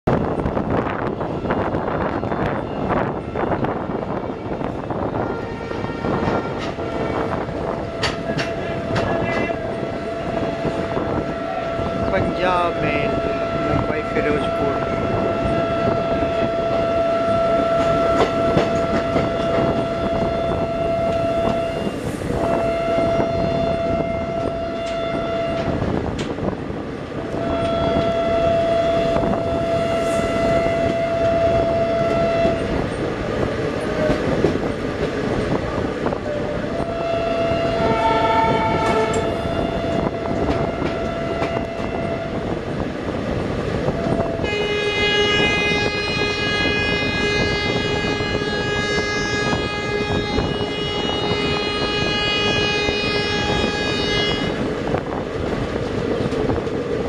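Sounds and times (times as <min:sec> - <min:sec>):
trains running with wheel clatter: 0:00.0 - 0:57.0
lower-pitched train horn: 0:00.7 - 0:26.0, 0:27.3 - 0:32.8, 0:35.8 - 0:42.6, 0:43.8 - 0:54.7
locomotive horn blasts: 0:05.1 - 0:25.8, 0:27.3 - 0:32.8, 0:36.7 - 0:42.6, 0:43.9 - 0:54.6.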